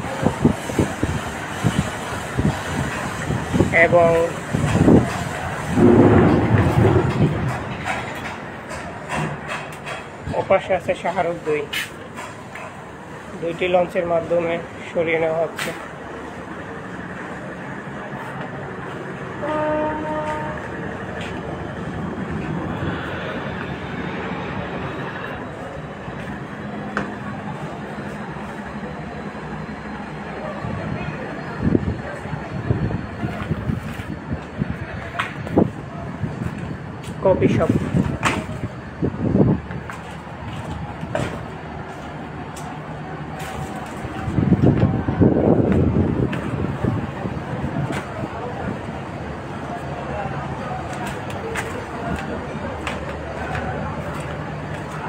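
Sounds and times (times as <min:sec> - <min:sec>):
steady rumbling noise: 0:00.0 - 0:11.1, 0:20.3 - 0:55.0
harbour noise: 0:00.0 - 0:55.0
ship horn blast: 0:05.7 - 0:07.7, 0:19.3 - 0:20.9.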